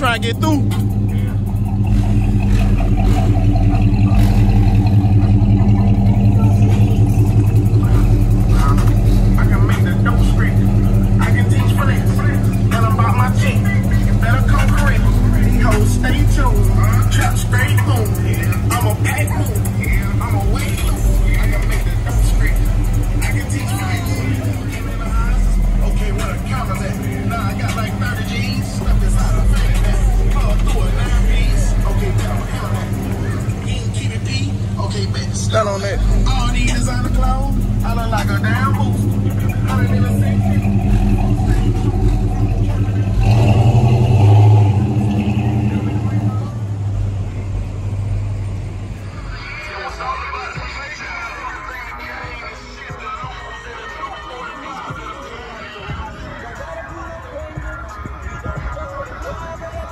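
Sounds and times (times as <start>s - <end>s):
bass-heavy music: 0.0s - 59.9s
car engines running: 0.0s - 59.9s
indistinct voices: 0.0s - 59.9s.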